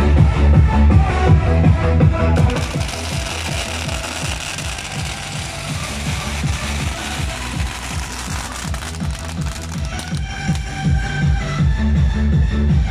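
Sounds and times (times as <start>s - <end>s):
electronic dance music: 2.2s - 11.0s
loud crackling hiss: 2.4s - 10.9s.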